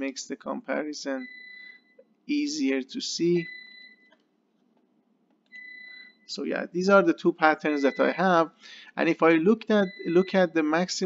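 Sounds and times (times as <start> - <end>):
high-pitched electronic whine: 5.6 - 8.2.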